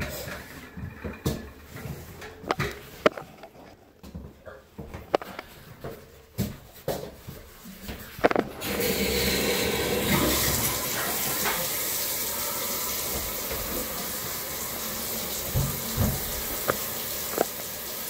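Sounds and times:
tap water running into tub: 8.2s - 18.0s.

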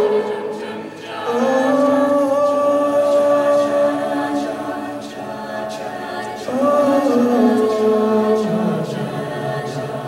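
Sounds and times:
choir singing a sustained chord: 0.0s - 10.0s.

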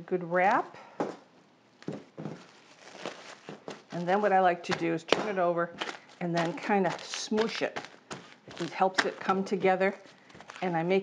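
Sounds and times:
plastic cling wrap crinkling: 1.8s - 11.0s.

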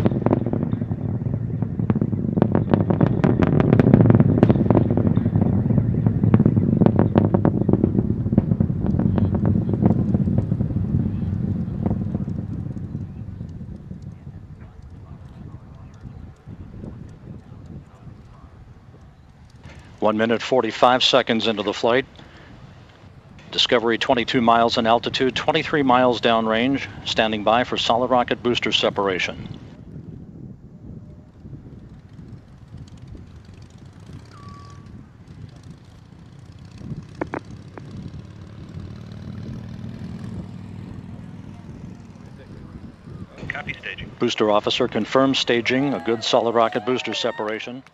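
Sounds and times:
distant rocket launch rumble: 0.0s - 47.9s.

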